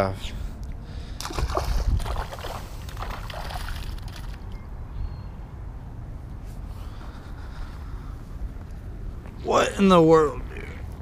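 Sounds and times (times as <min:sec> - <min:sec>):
wind rumbling on microphone: 0:01.2 - 0:09.2.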